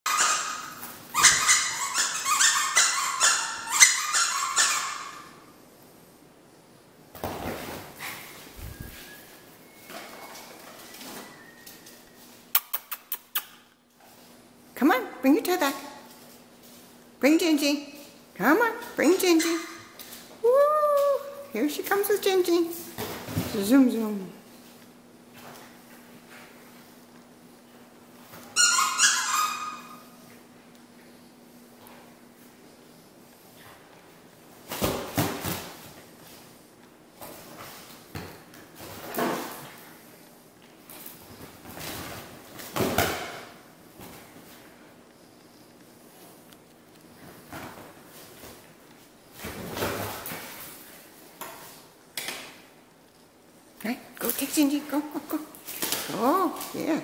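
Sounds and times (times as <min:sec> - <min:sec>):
squeaky toy squeaking: 0:00.1 - 0:05.3, 0:28.6 - 0:30.0.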